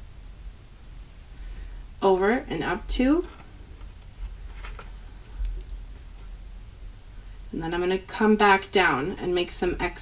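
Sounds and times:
rustles of cardstock: 4.1s - 5.1s.

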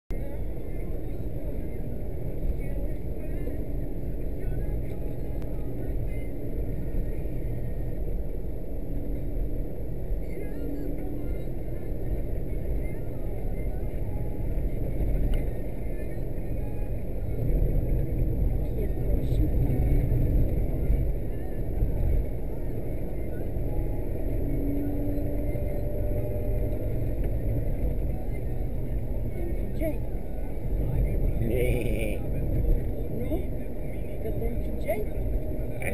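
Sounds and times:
car engine and tyre rumble: 0.1s - 35.9s.

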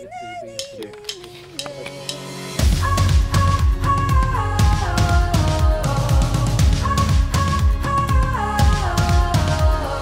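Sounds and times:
woman singing: 0.0s - 10.0s.

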